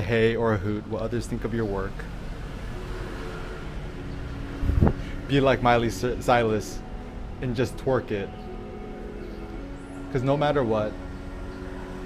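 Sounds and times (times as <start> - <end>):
rising whoosh: 2.2 - 5.9.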